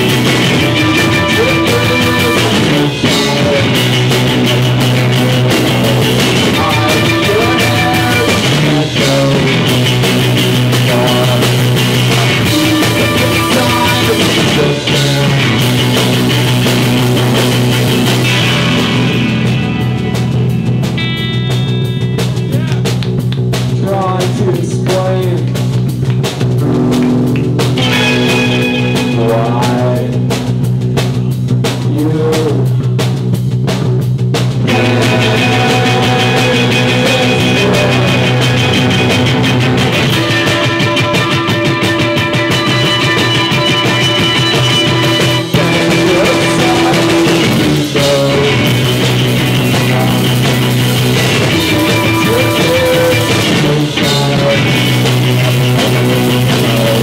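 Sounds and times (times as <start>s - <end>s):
drum kit beats: 0.0s - 57.0s
rock band playing: 0.0s - 57.0s.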